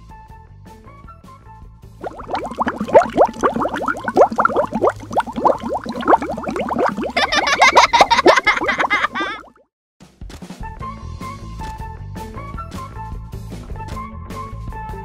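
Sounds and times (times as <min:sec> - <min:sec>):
cartoon bubble bloops: 0:02.0 - 0:09.6.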